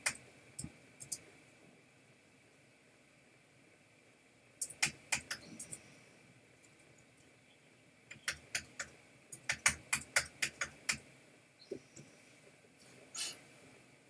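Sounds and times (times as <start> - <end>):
keyboard and mouse clicking: 0.0 - 1.2, 4.6 - 5.8, 8.1 - 11.0
short hiss: 13.1 - 13.5.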